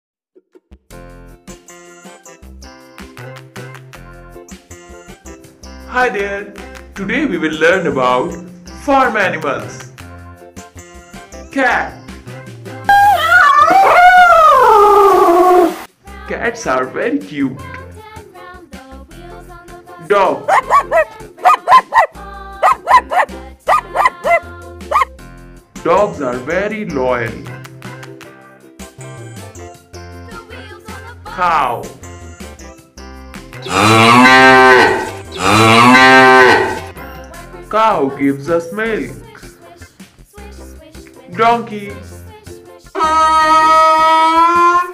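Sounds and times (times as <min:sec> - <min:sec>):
background music with beat: 0:00.6 - 0:13.3, 0:17.2 - 0:33.8, 0:34.5 - 0:43.0
cow mooing: 0:33.6 - 0:36.9.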